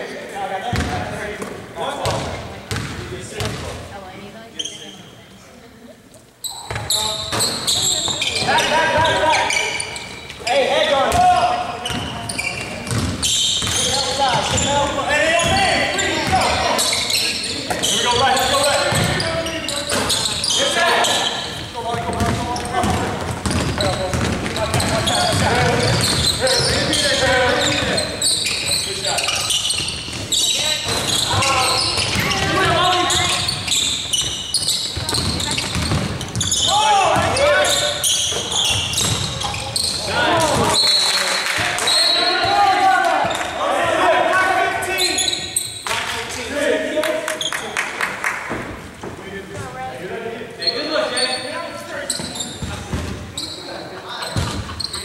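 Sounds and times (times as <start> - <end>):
players calling out: 6.4 - 45.8
basketball dribbled on hardwood floor: 35.0 - 36.4.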